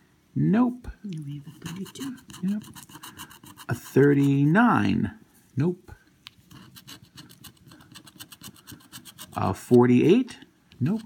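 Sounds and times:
scratching lottery ticket: 1.3s - 4.5s, 6.4s - 9.8s, 10.8s - 11.0s.

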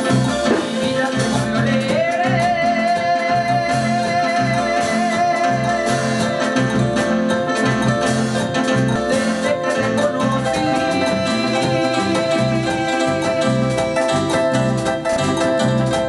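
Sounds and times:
drum kit: 0.0s - 16.0s
held keyboard melody: 0.0s - 16.0s
pulsing electric bass line: 0.0s - 16.0s.

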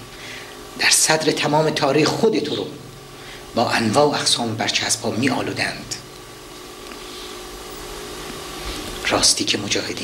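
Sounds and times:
faint even hum: 0.0s - 10.0s
steady hiss: 0.0s - 10.0s.

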